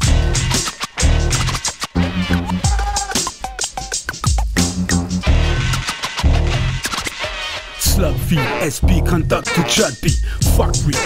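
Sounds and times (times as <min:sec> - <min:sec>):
heavy kick drum: 0:00.0 - 0:01.4, 0:04.2 - 0:05.5
record scratching on a turntable: 0:00.0 - 0:08.6
hip hop beat: 0:00.0 - 0:11.0.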